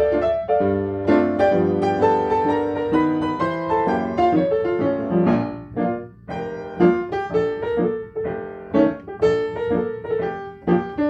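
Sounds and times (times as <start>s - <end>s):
solo jazz piano: 0.0s - 11.0s.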